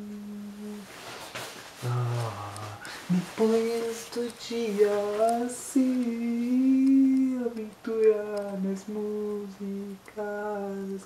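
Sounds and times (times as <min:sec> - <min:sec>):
man singing wordless notes: 0:00.0 - 0:00.9, 0:01.8 - 0:11.0.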